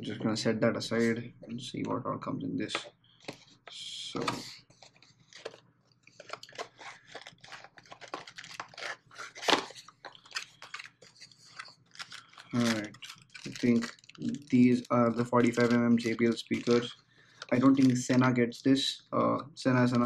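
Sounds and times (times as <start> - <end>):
man speaking: 0.0 - 2.9, 3.7 - 4.6, 12.5 - 20.0
cardboard box rustling and crinkling: 4.7 - 14.5.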